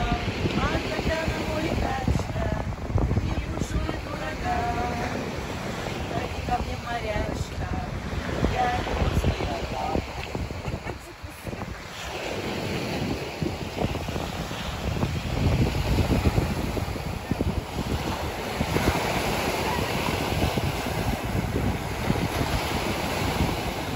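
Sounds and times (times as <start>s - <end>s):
waves breaking on pebble shore: 0.0s - 23.9s
wind buffeting microphone: 0.0s - 23.9s.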